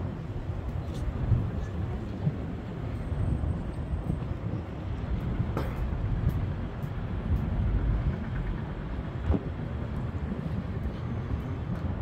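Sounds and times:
traffic rumble: 0.0 - 12.0
wind buffeting microphone: 0.0 - 12.0.

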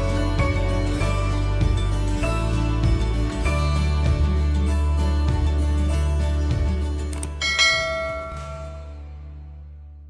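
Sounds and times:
low background music: 0.0 - 10.0
bell-like chime: 7.4 - 9.1.

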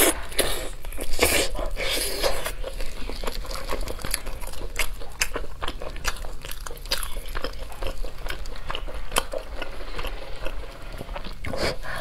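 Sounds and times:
close-miked chewing: 0.0 - 12.0.

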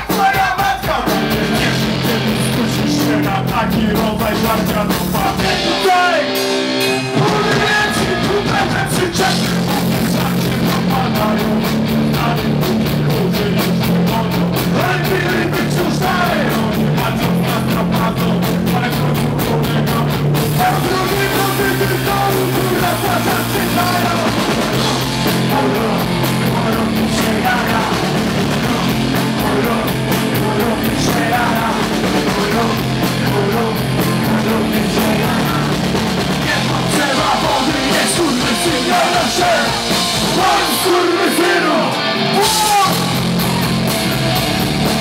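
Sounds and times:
person singing: 0.0 - 43.4
drumming: 0.0 - 45.0
punk rock band playing live: 0.0 - 45.0
shouted vocals: 36.4 - 43.8.

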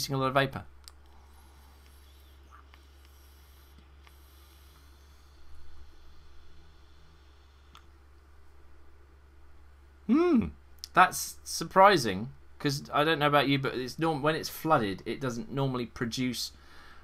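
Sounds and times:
person drawing on e-cigarette: 1.3 - 7.8.

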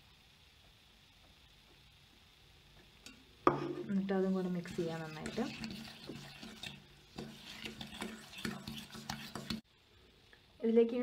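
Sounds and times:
fork scraping metal pot: 4.5 - 9.6.

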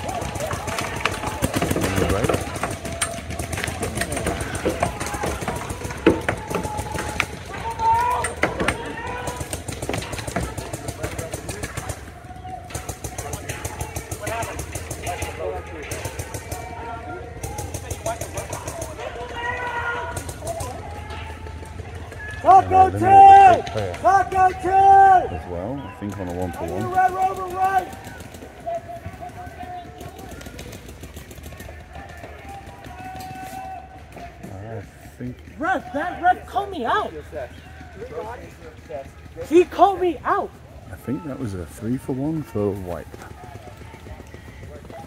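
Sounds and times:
paintball markers firing: 0.0 - 22.4, 26.1 - 34.5
players shouting: 0.0 - 45.0.

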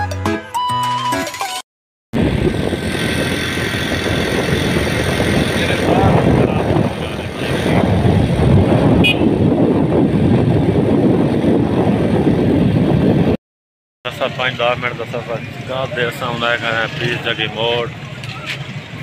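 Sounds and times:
motorcycle engine and road noise: 2.2 - 13.4, 14.1 - 19.0
wind buffeting microphone: 2.2 - 13.4.

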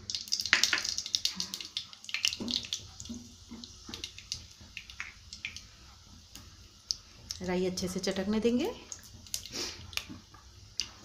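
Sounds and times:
mustard seeds sizzling in hot oil: 0.0 - 11.0.

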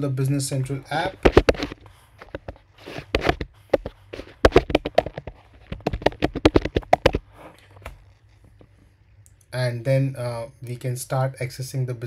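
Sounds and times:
keyboard typing: 1.1 - 7.2.

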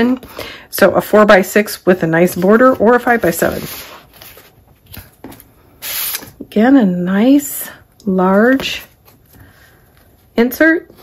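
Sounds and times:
paper pages rustling: 2.2 - 6.3.

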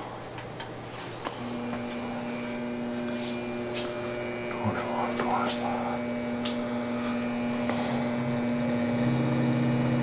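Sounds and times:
electric drive humming: 0.0 - 10.0.

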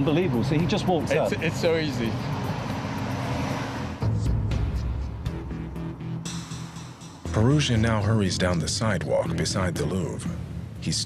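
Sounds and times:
city traffic hiss: 0.0 - 5.3.

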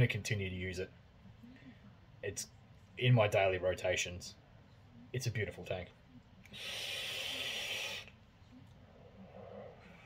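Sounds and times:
airy hiss of vape drag: 6.6 - 8.1.

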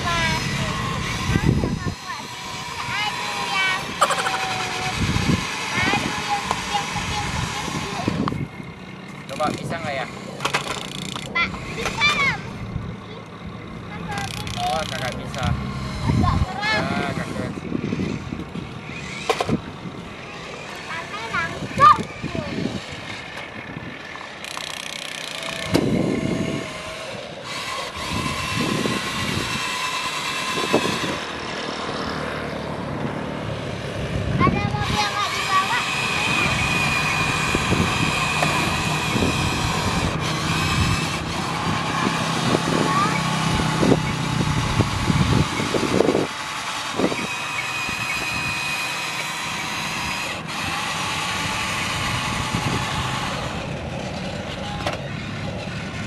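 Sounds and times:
electric toy motor whine: 0.0 - 13.2, 14.0 - 56.0.

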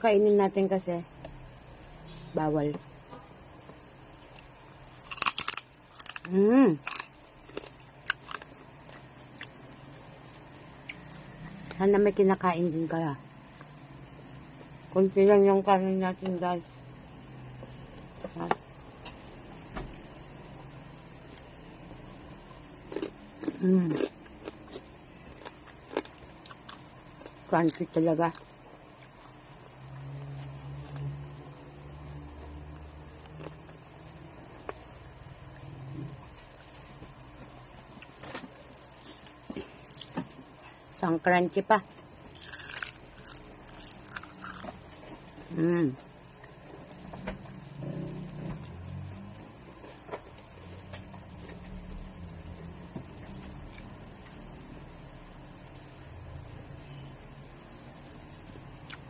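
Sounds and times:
low hum: 0.0 - 59.0
person chewing crispy skin: 4.3 - 11.3, 22.4 - 29.4, 33.0 - 33.9, 37.8 - 40.2, 42.2 - 45.3
person eating mouth sounds: 22.9 - 24.9.

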